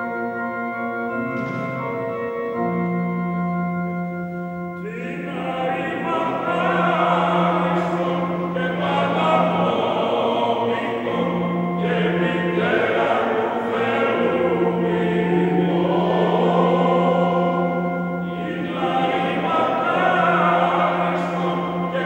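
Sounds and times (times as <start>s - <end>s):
men's choir singing in harmony: 4.8s - 22.0s
low held drone note: 10.7s - 22.0s.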